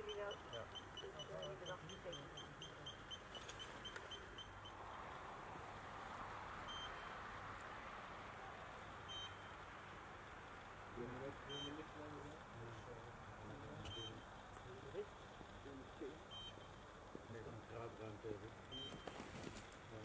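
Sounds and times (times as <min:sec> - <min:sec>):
gas detector beeping: 0:00.0 - 0:04.8, 0:09.1 - 0:09.5, 0:11.5 - 0:11.8, 0:16.3 - 0:16.7, 0:18.7 - 0:19.2
faint steady hiss: 0:00.0 - 0:20.0.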